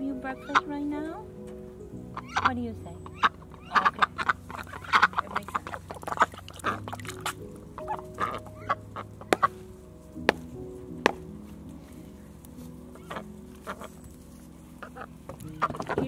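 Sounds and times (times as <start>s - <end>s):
soft background music: 0.0s - 16.0s
ducks quacking: 0.3s - 1.2s, 2.1s - 9.6s, 12.9s - 16.0s.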